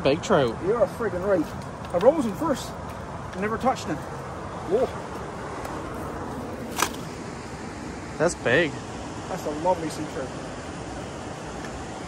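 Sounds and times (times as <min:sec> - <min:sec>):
outdoor rushing noise: 0:00.0 - 0:12.0.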